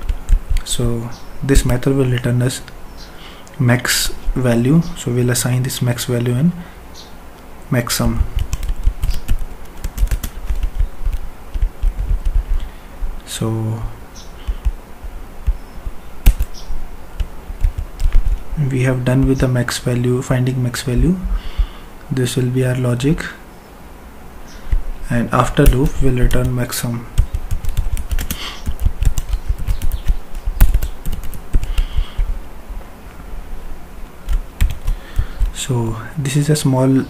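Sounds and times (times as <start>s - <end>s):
computer keyboard clicks: 8.3s - 12.5s, 16.2s - 16.6s, 17.2s - 18.4s, 27.2s - 32.3s, 34.3s - 35.6s.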